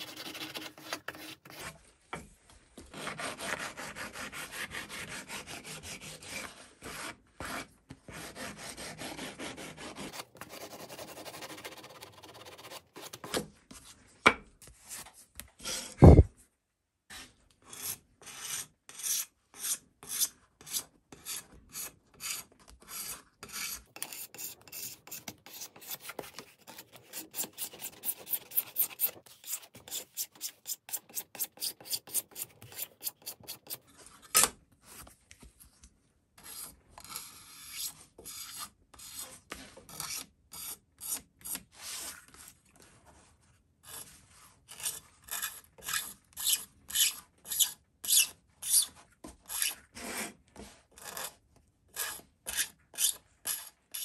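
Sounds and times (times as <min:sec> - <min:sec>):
steel scraper scraping plastic edge: 0:23.0 - 0:33.9.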